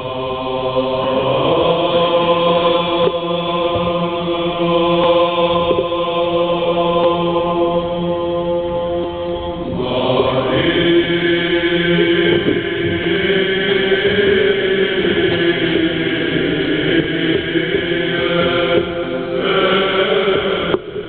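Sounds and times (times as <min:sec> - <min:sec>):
choir singing a hymn unaccompanied: 0:00.0 - 0:21.0.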